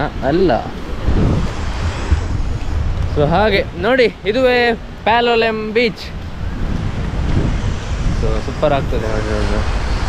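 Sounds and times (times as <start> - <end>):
wind buffeting microphone: 0.0 - 10.0
sea surf hiss: 7.0 - 10.0.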